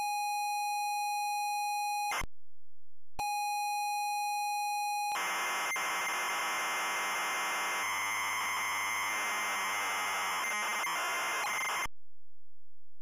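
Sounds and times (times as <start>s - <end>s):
cassette data loading screech: 5.2s - 11.9s.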